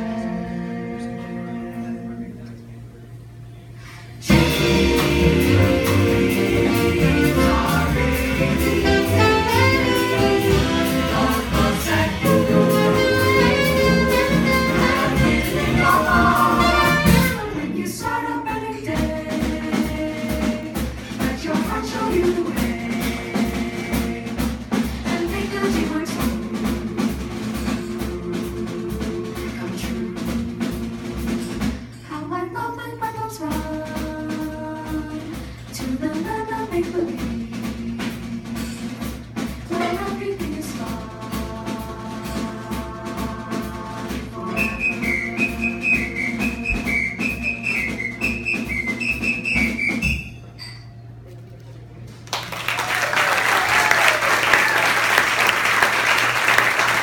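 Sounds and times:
jazz band with saxophone: 0.0 - 57.0
vocal ensemble singing: 3.9 - 50.3.

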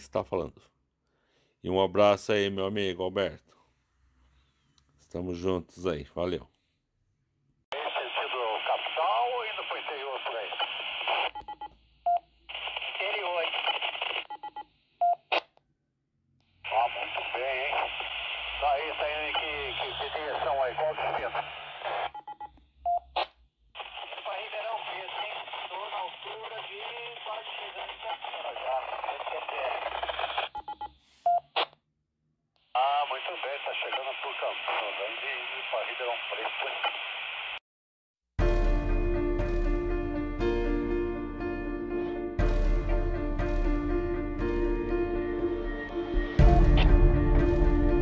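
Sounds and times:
radio noise burst: 7.8 - 11.6, 12.5 - 14.6, 16.6 - 22.3, 23.2 - 31.7, 32.7 - 37.6
radio tone beeps: 7.8 - 15.3, 16.7 - 23.1, 23.8 - 31.6.

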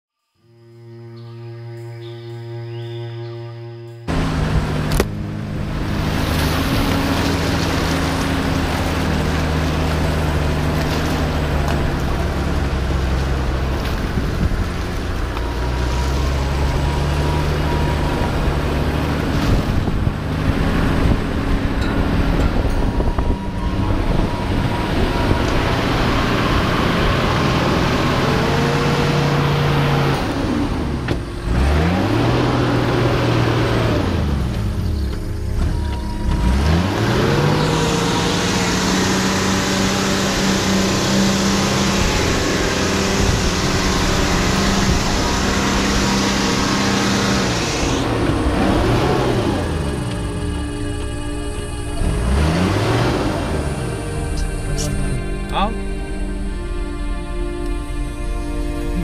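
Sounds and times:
vehicle engine running: 0.4 - 59.0
tyre noise on dirt track: 4.1 - 51.3.

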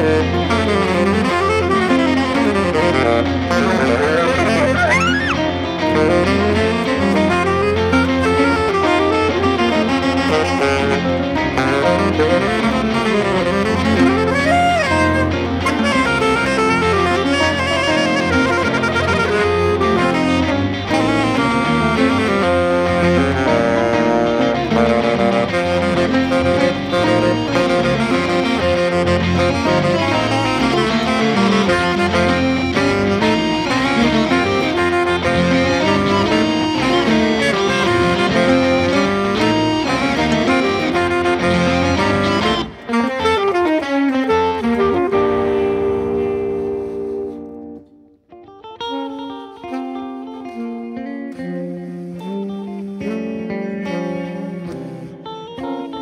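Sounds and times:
electric guitar playing jazz: 0.0 - 56.0
saxophone playing jazz: 0.0 - 56.0.

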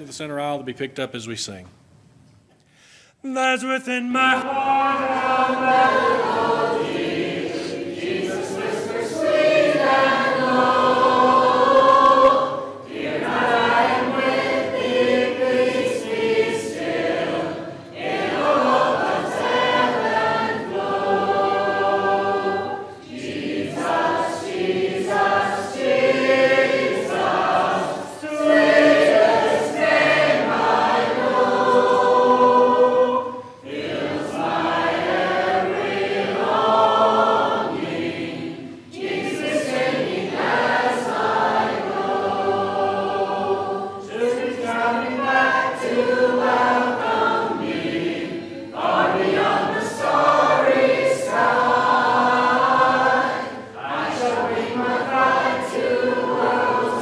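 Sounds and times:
congregation singing a hymn: 3.2 - 57.0.

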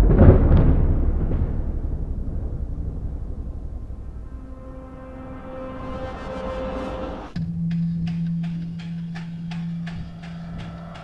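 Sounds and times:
low sustained music note: 0.0 - 11.0.

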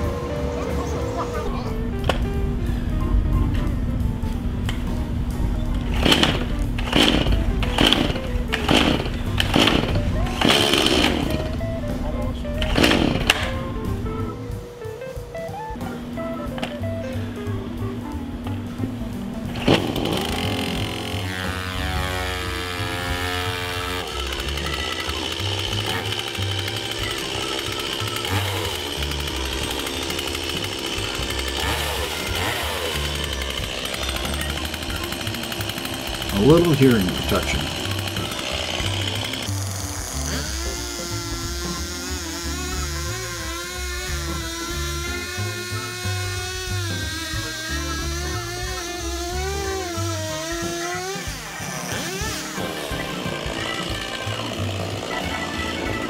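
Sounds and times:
chainsaw engine running: 0.0 - 3.2, 3.8 - 56.0
chainsaw starter cord pulls: 5.7 - 11.7, 12.5 - 13.7, 19.5 - 56.0.

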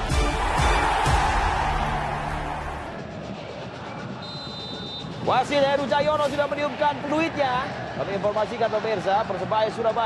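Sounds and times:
referee's whistle: 4.2 - 5.3.

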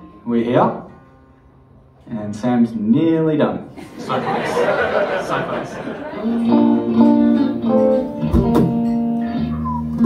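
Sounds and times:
guitar strings plucked: 6.2 - 10.0.

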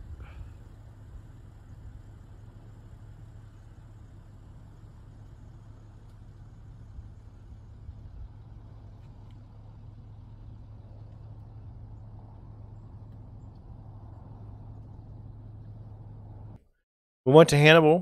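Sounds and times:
constant low hum: 0.0 - 16.6
outdoor background rumble: 0.0 - 16.6.

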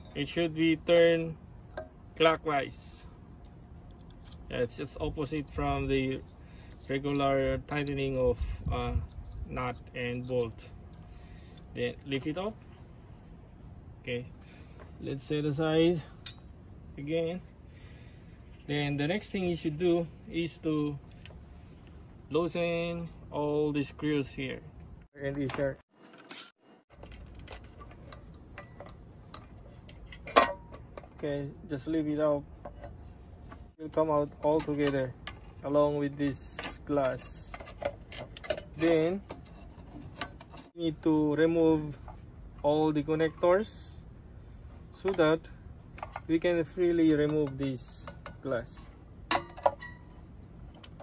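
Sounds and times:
light clicks and taps on metal: 47.0 - 50.0.

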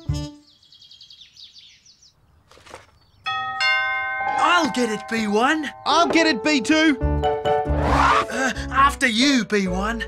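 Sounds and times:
bird twittering: 0.4 - 3.3
held musical chord: 3.7 - 7.8.

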